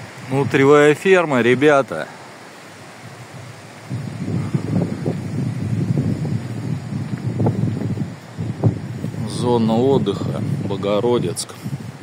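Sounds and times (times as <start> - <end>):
wind buffeting microphone: 2.7 - 12.0.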